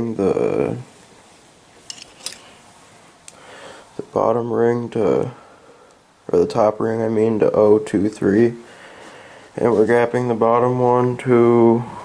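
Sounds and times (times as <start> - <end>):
light clinks: 1.9 - 2.6.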